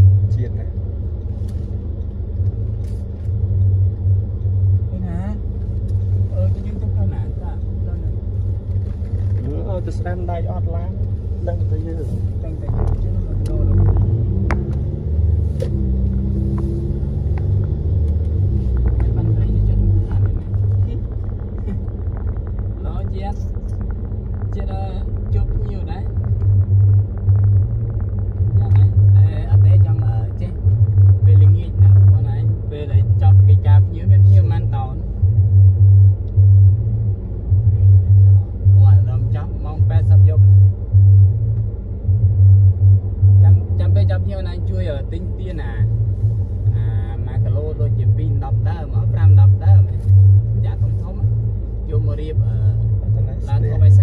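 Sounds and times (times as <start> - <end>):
car driving rumble inside cabin: 0.0 - 54.0.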